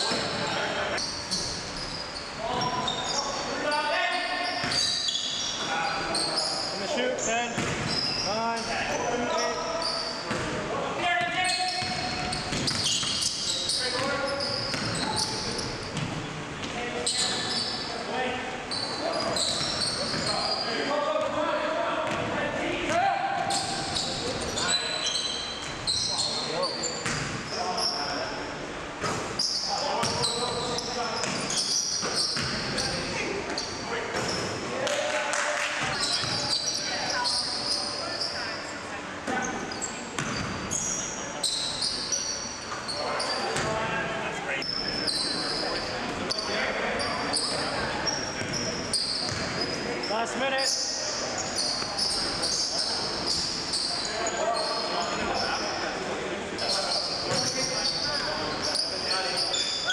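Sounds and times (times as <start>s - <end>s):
shoes squeaking: 0.0s - 18.0s, 18.7s - 20.9s, 22.9s - 28.3s, 29.0s - 34.6s, 35.8s - 43.8s, 44.5s - 55.8s, 56.6s - 59.9s.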